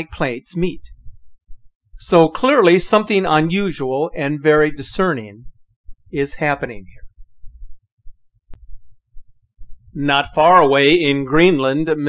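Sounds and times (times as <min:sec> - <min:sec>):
low irregular thumping: 0:00.8 - 0:02.0, 0:05.4 - 0:10.0.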